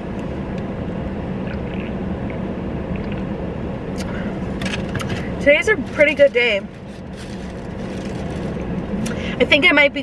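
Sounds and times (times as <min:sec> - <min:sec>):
car engine idling hum: 0:00.0 - 0:10.0.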